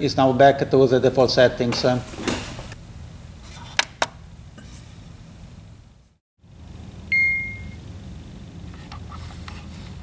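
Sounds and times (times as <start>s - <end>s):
low steady hum: 0.0s - 10.0s
electronic beep: 7.1s - 7.8s.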